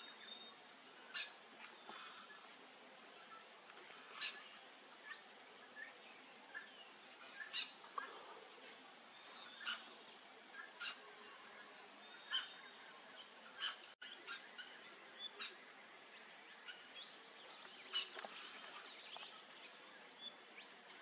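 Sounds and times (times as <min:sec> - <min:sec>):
birds chirping: 0:00.0 - 0:21.0
faint background hiss: 0:00.0 - 0:21.0.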